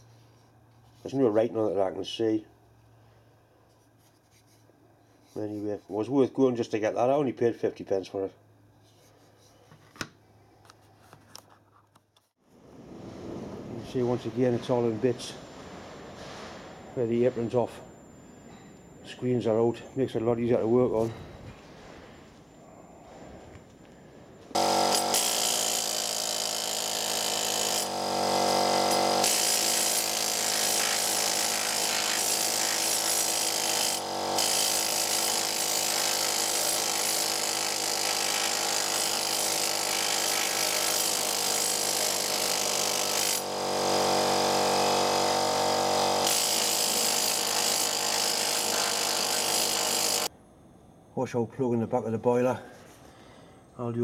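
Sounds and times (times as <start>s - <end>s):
power tool removing rust from steel: 24.6s - 50.3s.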